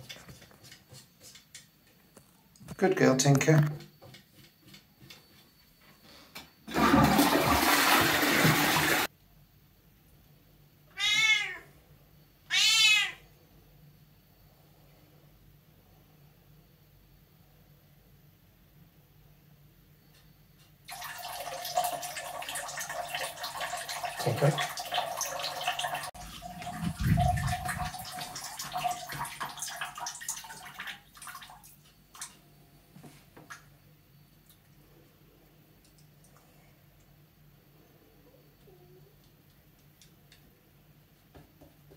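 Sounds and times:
toilet flushing: 6.6s - 9.1s, 20.8s - 32.3s
cat meowing: 10.9s - 11.7s, 12.5s - 13.3s.

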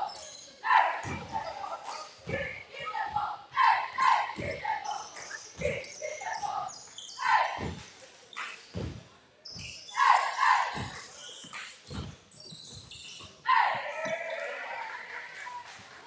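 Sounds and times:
voices echoing in gym: 0.0s - 16.0s
basketball bouncing on hardwood: 8.8s - 9.0s, 11.9s - 12.9s.

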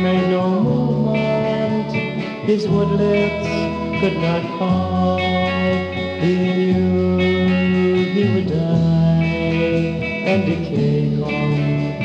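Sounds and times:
electric guitars and bass playing: 0.0s - 12.0s
person singing: 0.0s - 12.0s.

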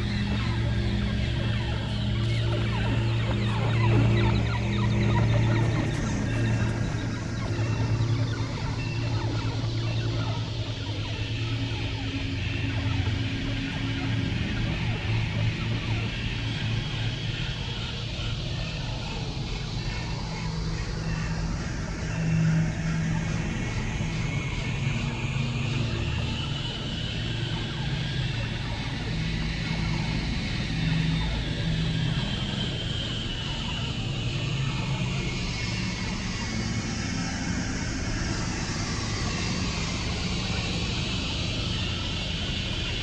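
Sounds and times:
rumbling drone with low hum: 0.0s - 43.0s.

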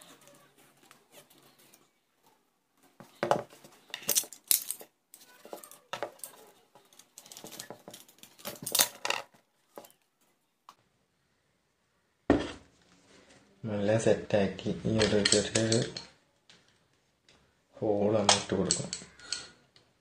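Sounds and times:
rustling: 0.0s - 10.4s
small hard objects knocking: 3.0s - 10.0s.

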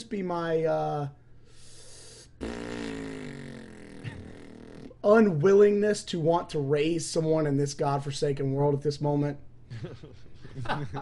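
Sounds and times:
man breathing: 1.3s - 2.4s.

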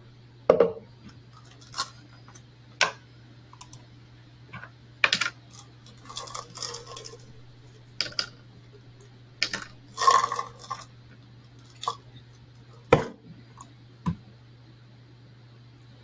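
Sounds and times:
faint low hum: 0.0s - 16.0s.

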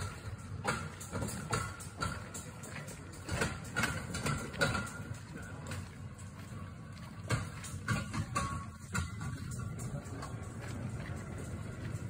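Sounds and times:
cart rolling on rails: 0.0s - 12.0s
footsteps on dirt: 0.0s - 12.0s.

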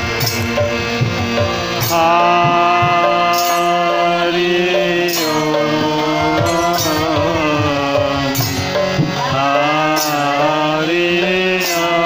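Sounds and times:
steady drone: 0.0s - 12.0s
voices chanting and singing: 0.8s - 12.0s.

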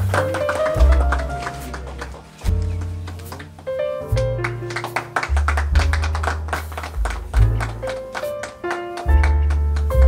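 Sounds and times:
deep bass notes: 0.0s - 3.3s, 5.3s - 8.1s.

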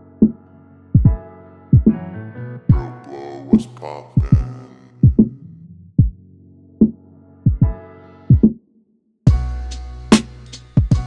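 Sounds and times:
deep kick drums: 1.0s - 1.2s, 4.2s - 5.4s, 6.0s - 6.2s, 7.5s - 8.5s
hip hop instrumental: 2.7s - 5.4s, 9.3s - 11.0s.

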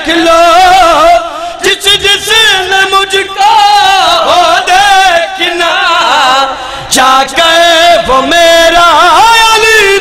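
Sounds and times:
man chanting devotional verse: 0.0s - 10.0s.

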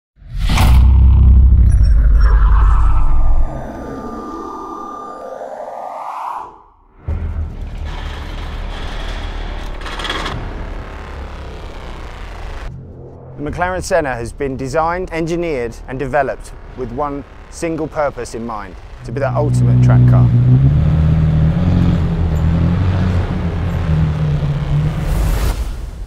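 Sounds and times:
whoosh: 0.2s - 6.8s
deep boom with rumble: 0.3s - 4.1s
steady low drone: 0.3s - 25.5s.

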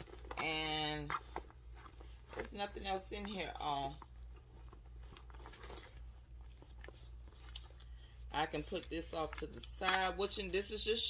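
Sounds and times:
rustling of leather bag: 0.0s - 7.8s
low steady hum: 0.0s - 11.0s
small clicks of items handled: 6.8s - 7.9s, 9.2s - 10.1s.

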